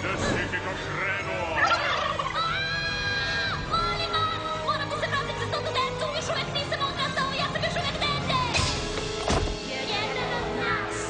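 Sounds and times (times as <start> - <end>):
cartoon warbling gobble-like cries: 1.6 - 3.6.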